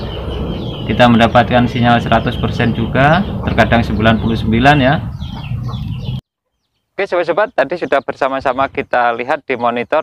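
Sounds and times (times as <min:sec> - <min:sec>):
chicken clucking: 0:03.2 - 0:06.6.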